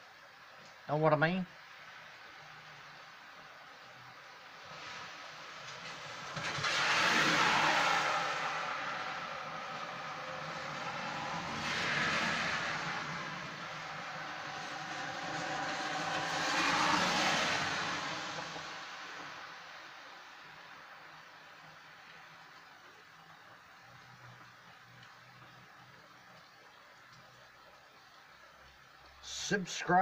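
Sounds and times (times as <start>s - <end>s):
vehicles passing on wet road: 3.9s - 26.4s.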